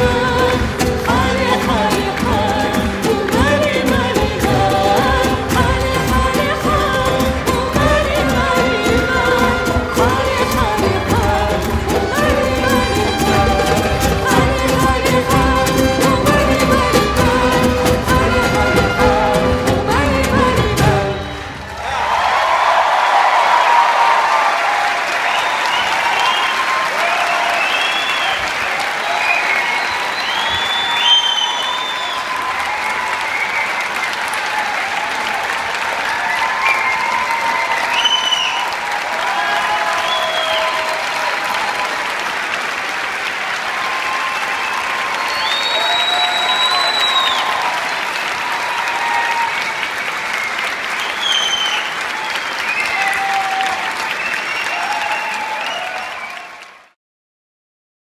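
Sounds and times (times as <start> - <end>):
audience applauding: 0.0 - 57.0
cheers and calls: 0.0 - 57.0.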